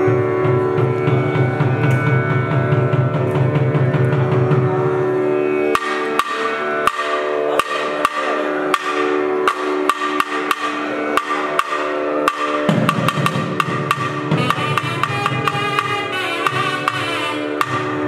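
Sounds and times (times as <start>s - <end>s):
drum strokes: 0.0s - 18.0s
double-reed horn held notes: 4.2s - 18.0s.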